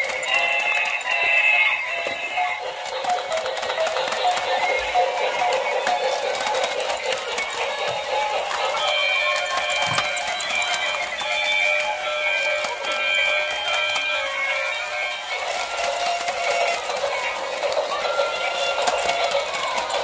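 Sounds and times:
small clicks pattering: 0:00.0 - 0:20.0
tinny electronic toy tunes: 0:00.0 - 0:20.0.

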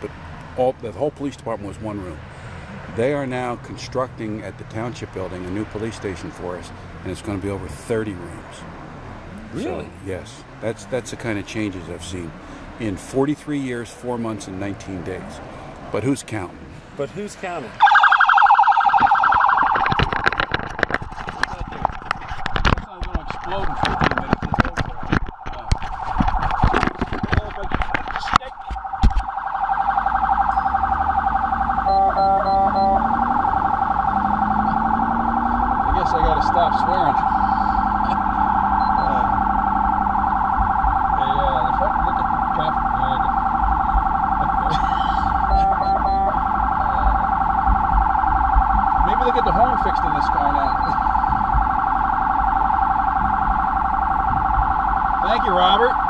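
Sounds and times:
police siren wailing: 0:17.8 - 0:56.0.

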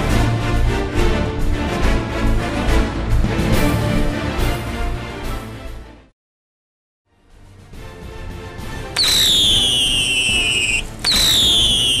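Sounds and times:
firework sparks hissing: 0:09.0 - 0:12.0
firework whistles sliding down: 0:09.0 - 0:12.0.

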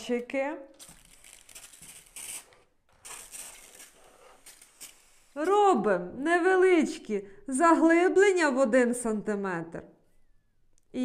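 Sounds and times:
pressure sprayer hissing: 0:03.0 - 0:05.6.

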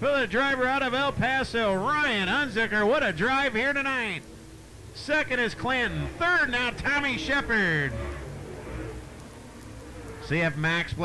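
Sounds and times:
race car engines rushing: 0:00.0 - 0:11.0.

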